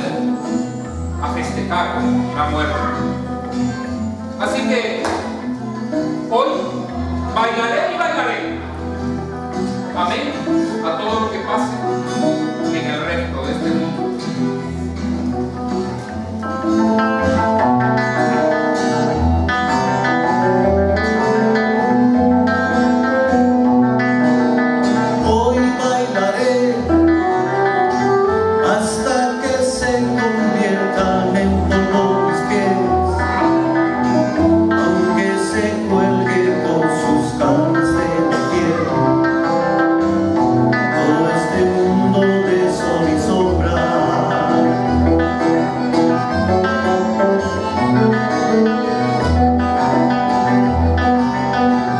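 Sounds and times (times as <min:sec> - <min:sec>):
acoustic band playing a song: 0:00.0 - 0:51.9.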